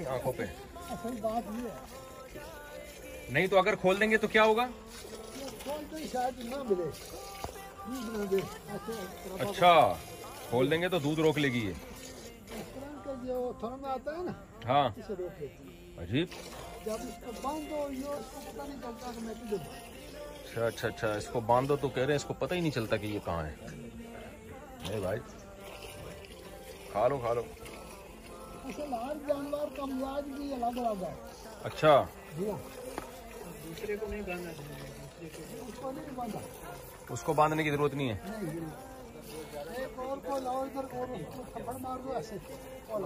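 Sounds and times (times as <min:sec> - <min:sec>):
background music: 0:00.0 - 0:43.0
flies buzzing: 0:00.0 - 0:43.0
voices: 0:00.0 - 0:43.0.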